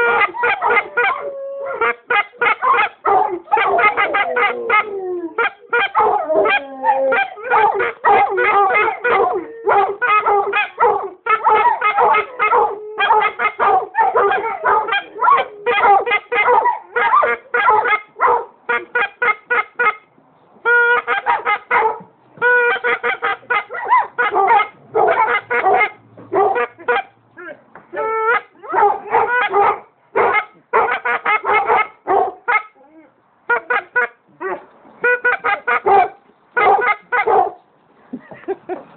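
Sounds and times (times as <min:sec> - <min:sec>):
goose call honks and clucks: 0:00.0 - 0:18.1, 0:18.7 - 0:32.9, 0:33.5 - 0:37.5.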